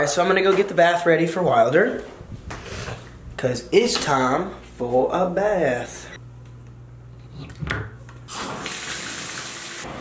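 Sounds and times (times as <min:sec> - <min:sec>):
water running from bathtub tap: 0:08.3 - 0:09.9.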